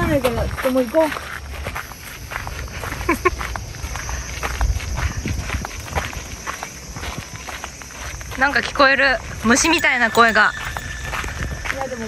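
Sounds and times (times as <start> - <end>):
footsteps crunching on gravel: 0.0 - 12.0.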